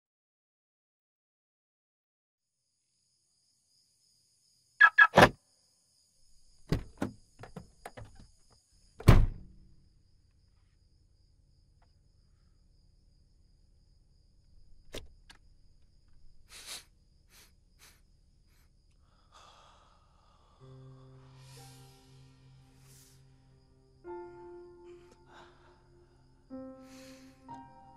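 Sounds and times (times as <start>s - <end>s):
faint breathy exhales: 16.5s - 23.3s.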